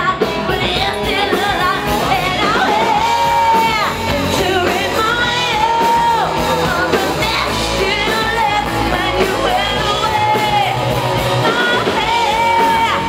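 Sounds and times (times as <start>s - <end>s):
live band playing: 0.0s - 13.0s.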